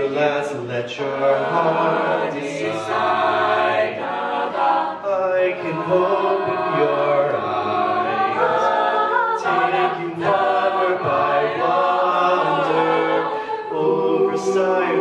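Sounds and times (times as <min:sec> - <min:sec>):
vocal harmony: 0:00.0 - 0:15.0.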